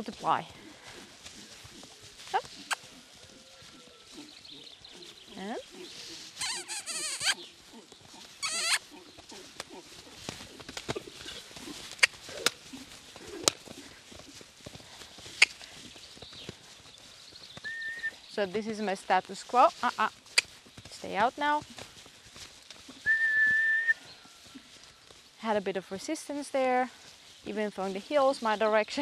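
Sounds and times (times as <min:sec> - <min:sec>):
farm animal calling: 0:00.2 - 0:14.4, 0:15.2 - 0:16.2.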